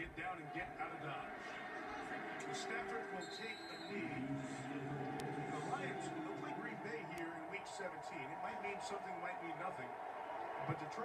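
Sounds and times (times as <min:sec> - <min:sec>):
indistinct voices talking: 0:00.0 - 0:11.0
television broadcast sound: 0:00.0 - 0:11.0.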